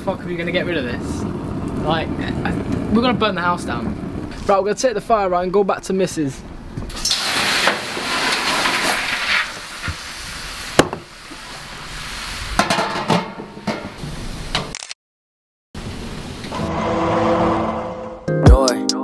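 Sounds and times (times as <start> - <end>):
hose water jetting into metal bin: 6.9 - 14.5
music: 18.2 - 19.0.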